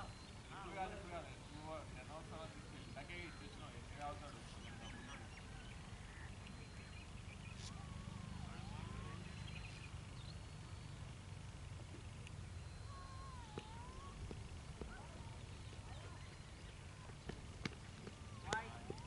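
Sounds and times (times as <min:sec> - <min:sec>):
bird calling: 0:00.0 - 0:11.1, 0:11.9 - 0:19.0
low outdoor rumble: 0:00.0 - 0:19.0.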